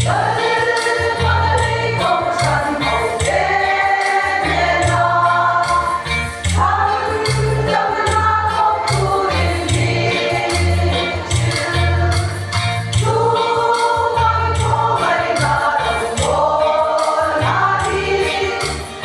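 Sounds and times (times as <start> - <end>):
low bass line: 0.0 - 0.4, 4.5 - 13.4, 14.2 - 16.6
women's choir singing: 0.0 - 19.0.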